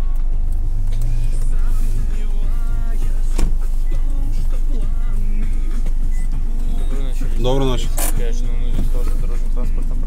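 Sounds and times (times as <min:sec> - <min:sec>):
car engine idling: 0:00.0 - 0:10.0
music from car radio: 0:00.0 - 0:10.0.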